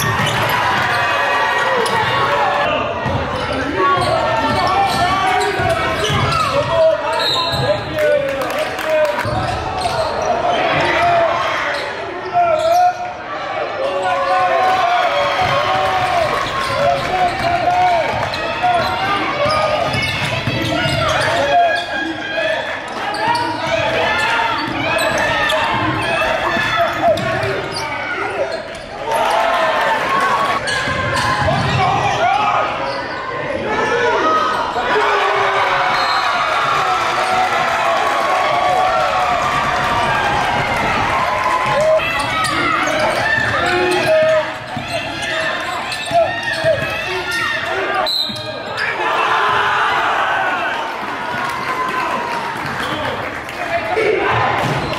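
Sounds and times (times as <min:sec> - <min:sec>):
crowd shouting: 0:00.0 - 0:54.9.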